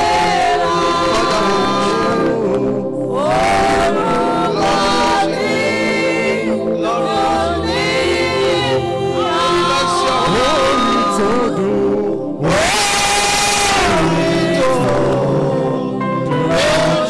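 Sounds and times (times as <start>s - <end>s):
group singing gospel: 0.0s - 17.0s
sustained instrumental accompaniment: 0.0s - 17.0s.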